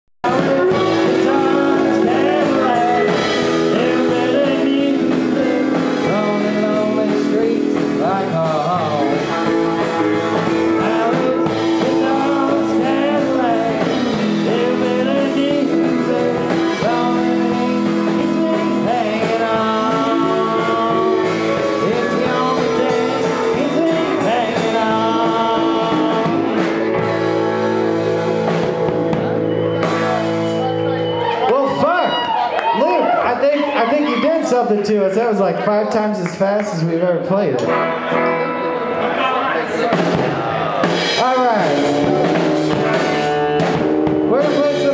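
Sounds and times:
man singing into a microphone: 0:00.2 - 0:09.5, 0:10.4 - 0:26.9, 0:44.3 - 0:44.9
live band playing fast song: 0:00.2 - 0:44.9.

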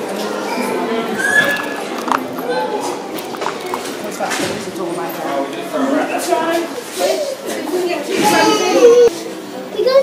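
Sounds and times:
indistinct voices: 0:00.0 - 0:09.4
high-pitched squeal: 0:01.1 - 0:02.0.

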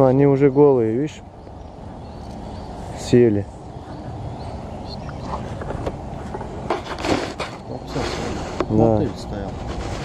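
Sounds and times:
wind rumbling on microphone: 0:01.0 - 0:10.0
brief rustle: 0:05.2 - 0:10.0.

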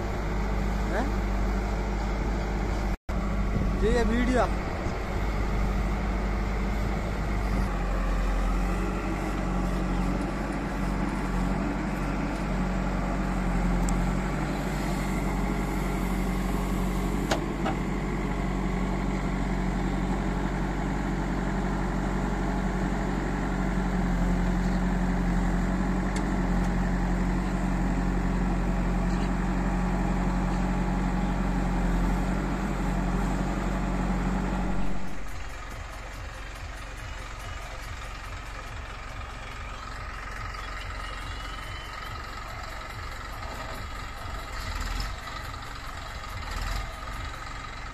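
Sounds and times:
backhoe diesel engine digging: 0:00.0 - 0:47.9.

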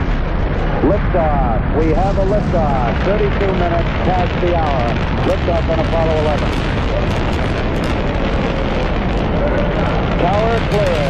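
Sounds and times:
rocket engines deep rumble: 0:00.0 - 0:11.0.

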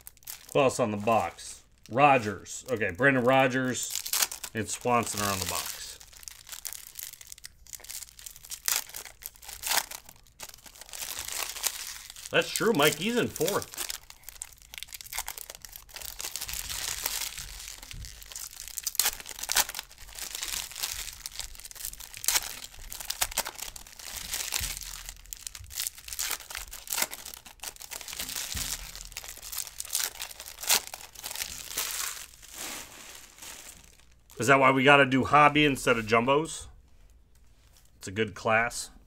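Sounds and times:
wrappers tearing and crinkling: 0:00.0 - 0:34.5
cards shuffled by hand: 0:10.7 - 0:14.1.

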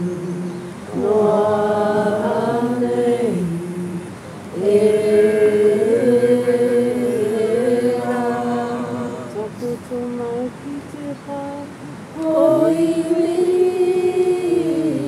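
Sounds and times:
voices singing together: 0:00.0 - 0:15.0.

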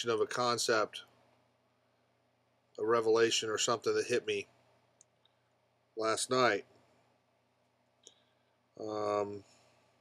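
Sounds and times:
man saying um: 0:08.8 - 0:09.4.

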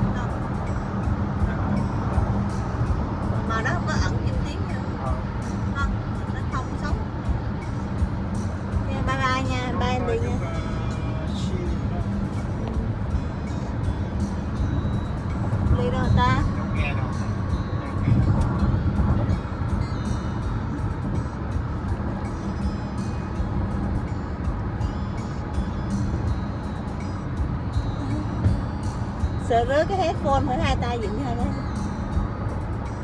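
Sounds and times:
car cabin engine and road rumble: 0:00.0 - 0:33.0.

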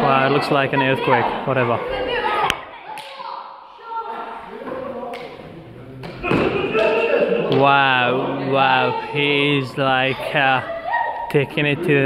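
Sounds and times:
people talking in background: 0:00.0 - 0:12.0.

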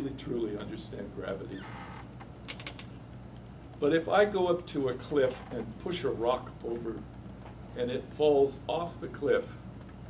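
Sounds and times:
man talking: 0:00.0 - 0:01.7, 0:03.8 - 0:07.0, 0:07.8 - 0:09.6
steady low hum: 0:00.0 - 0:10.0.

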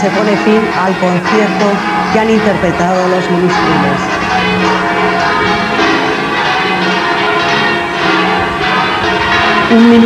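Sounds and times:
church bells pealing: 0:00.0 - 0:10.0.

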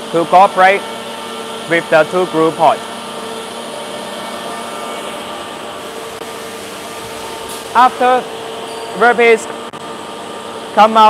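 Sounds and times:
industrial machinery humming: 0:00.0 - 0:11.0.

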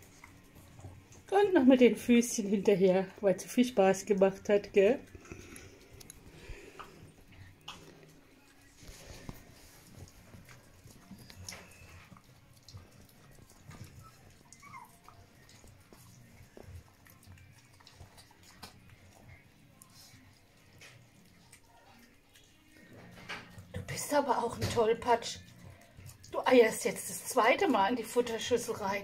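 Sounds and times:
puppies lapping wet food: 0:00.0 - 0:29.0
puppy squeak: 0:13.9 - 0:15.2.

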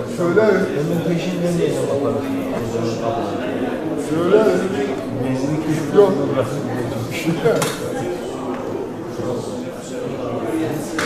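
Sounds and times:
indistinct talk: 0:00.0 - 0:11.0.

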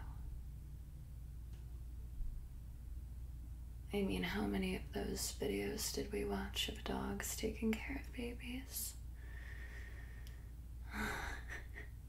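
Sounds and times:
steady low hum: 0:00.0 - 0:12.0
faint breaths: 0:09.1 - 0:11.5.

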